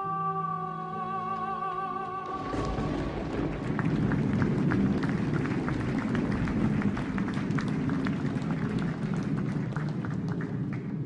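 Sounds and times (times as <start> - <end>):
audience applauding: 1.3 - 11.0
low rumble: 2.2 - 11.0.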